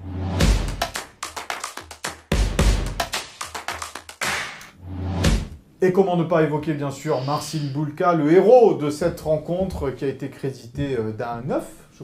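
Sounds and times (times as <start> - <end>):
percussive jingle music: 0.1 - 5.6.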